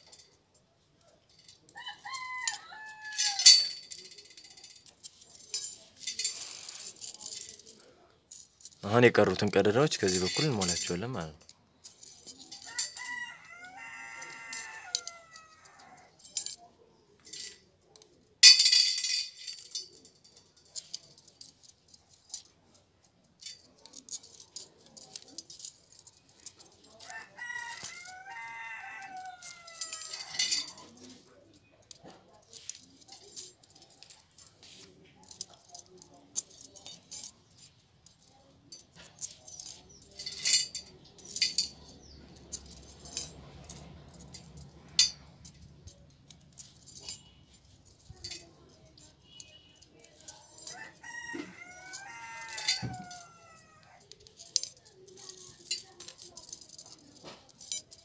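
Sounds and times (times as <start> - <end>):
rooster crowing: 1.8 - 3.5, 12.7 - 16.2, 27.0 - 30.8, 50.7 - 54.0
bicycle spokes clicking and jingling: 29.2 - 50.9.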